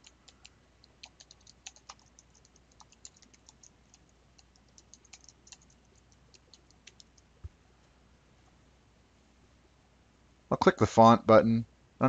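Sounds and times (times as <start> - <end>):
faint keyboard typing: 0.0 - 7.6.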